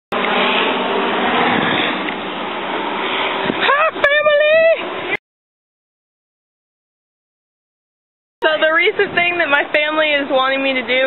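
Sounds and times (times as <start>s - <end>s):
loud steady rushing noise: 0.1s - 5.2s
person calling out: 3.6s - 4.8s.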